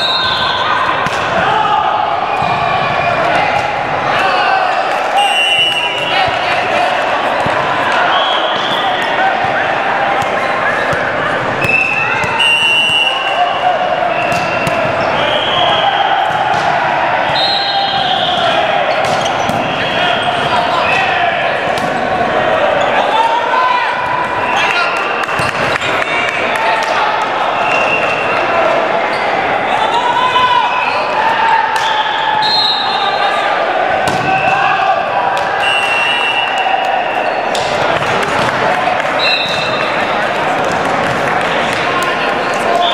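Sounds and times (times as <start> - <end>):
echoing din of voices: 0.0 - 42.9
volleyball being hit: 1.0 - 1.4, 14.3 - 14.9, 15.6 - 17.4, 34.0 - 34.5.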